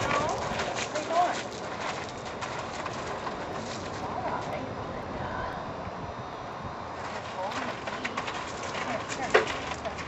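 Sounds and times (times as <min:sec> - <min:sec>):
horse hooves on gravel: 0:00.0 - 0:04.7, 0:06.9 - 0:10.0.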